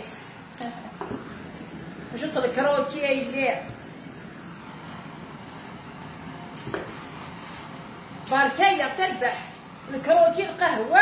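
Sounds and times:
blowtorch hissing: 0.0s - 11.0s.

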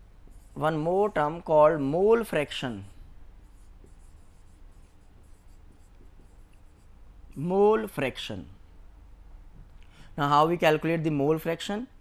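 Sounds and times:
marker writing on whiteboard: 0.2s - 1.2s, 2.4s - 7.0s.

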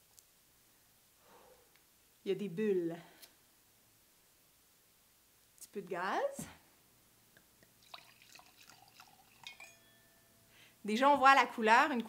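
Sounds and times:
wine pouring into glass: 7.8s - 10.0s
glass ringing tone: 8.7s - 10.6s.

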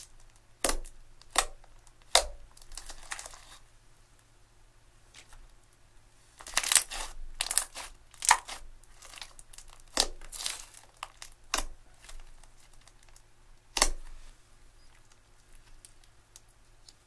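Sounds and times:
hands squishing sticky slime: 0.0s - 3.6s, 6.4s - 14.3s.

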